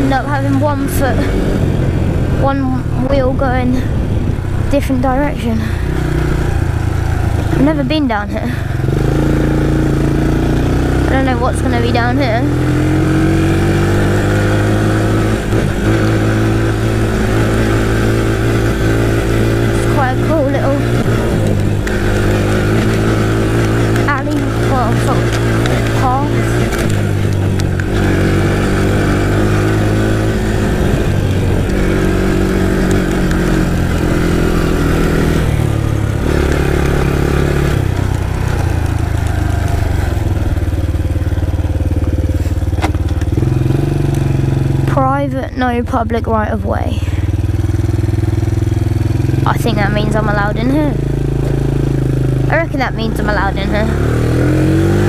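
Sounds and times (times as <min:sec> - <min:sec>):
quad bike engine running: 0:00.0 - 0:55.0.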